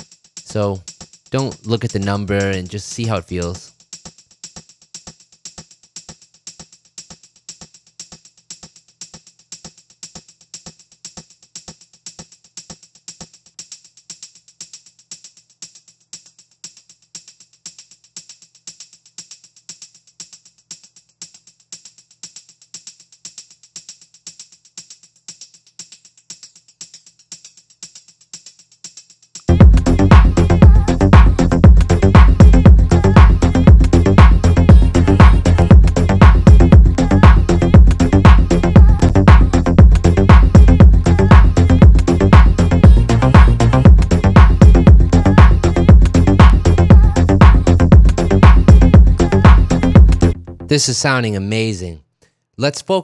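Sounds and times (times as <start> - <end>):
shaker rhythm with echoes: 0.0 - 50.4.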